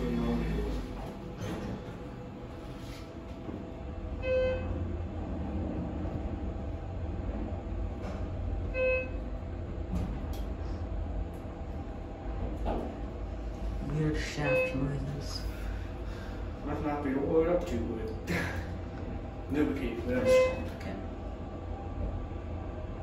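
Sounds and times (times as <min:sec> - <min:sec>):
elevator descending rumble: 0:00.0 - 0:23.0.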